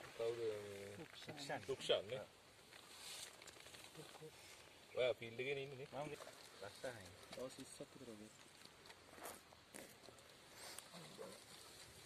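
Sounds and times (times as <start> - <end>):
rustling in bushes: 0.0 - 12.0.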